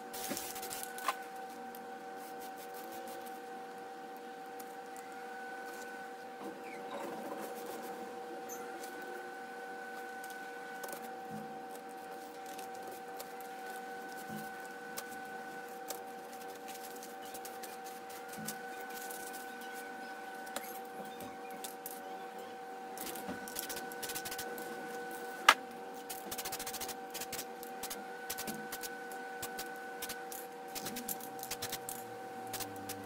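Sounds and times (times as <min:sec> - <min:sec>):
steady machine hum: 0:00.0 - 0:33.0.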